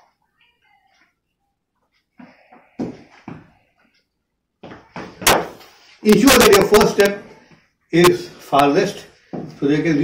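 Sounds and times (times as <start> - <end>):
shoes stepping on tiled floor: 4.6 - 5.7.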